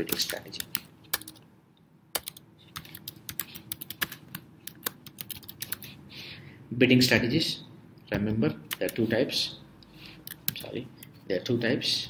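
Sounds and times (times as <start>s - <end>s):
typing on keyboard: 0.0s - 1.4s, 2.2s - 5.9s.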